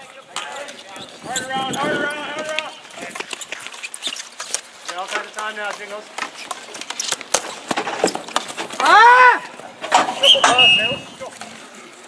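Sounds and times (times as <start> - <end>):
young players shouting: 8.8 - 9.6.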